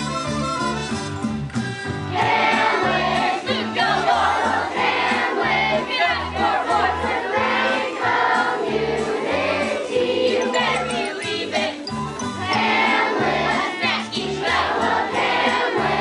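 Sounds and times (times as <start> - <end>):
instrumental accompaniment with bass: 0.0 - 16.0
young voices singing together: 2.1 - 16.0.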